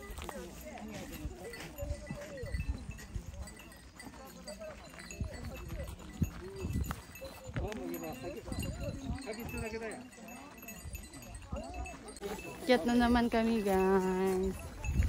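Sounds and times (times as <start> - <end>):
indistinct group chatter: 0.0 - 15.0.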